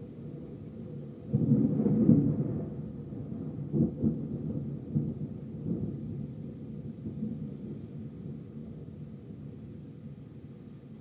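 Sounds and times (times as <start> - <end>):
steady rain: 0.0 - 11.0
thunder rumbling: 1.2 - 9.0.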